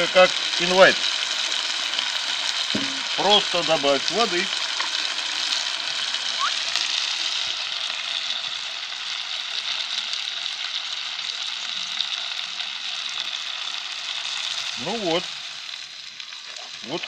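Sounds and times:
mushrooms sizzling in pan: 0:00.0 - 0:17.0.

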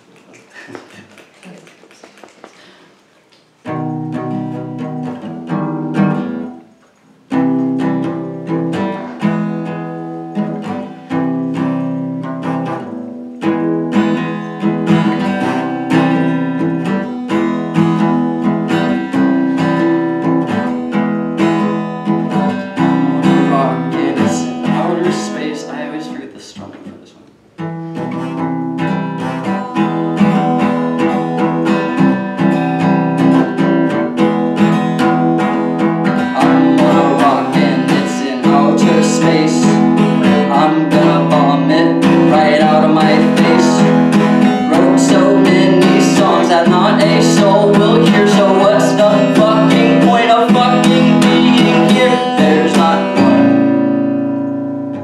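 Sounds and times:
acoustic guitar strumming: 0:03.6 - 0:55.0
person singing: 0:22.6 - 0:26.2, 0:35.7 - 0:53.8.

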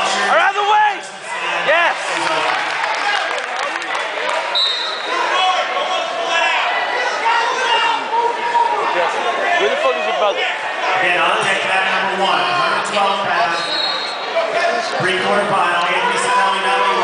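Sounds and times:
crowd calling and shouting: 0:00.0 - 0:17.0.

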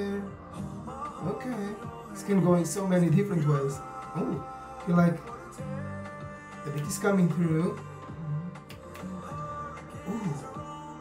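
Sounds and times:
man singing: 0:00.0 - 0:11.0
pop song beat: 0:00.0 - 0:11.0.

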